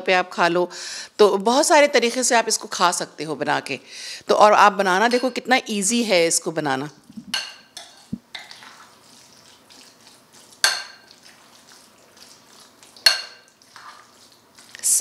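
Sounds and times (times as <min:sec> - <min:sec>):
spoon mixing salad in bowl: 0:05.0 - 0:05.5, 0:07.0 - 0:15.0
spoon clinking on glass bowl: 0:05.1 - 0:05.4, 0:07.3 - 0:08.6, 0:10.6 - 0:11.1, 0:13.0 - 0:13.5.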